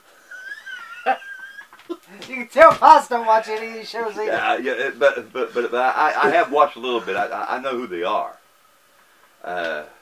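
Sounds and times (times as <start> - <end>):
man squealing with held-in laughter: 0.2 - 2.1.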